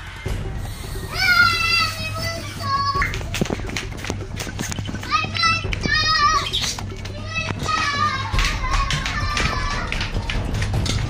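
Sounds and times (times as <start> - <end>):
background music: 0.0 - 11.0
children shrieking and shouting: 1.0 - 3.2, 5.0 - 10.6.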